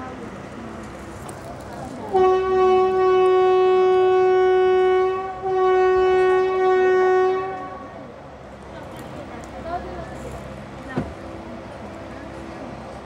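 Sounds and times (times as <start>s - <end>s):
locomotive horn blasts: 2.1s - 8.0s.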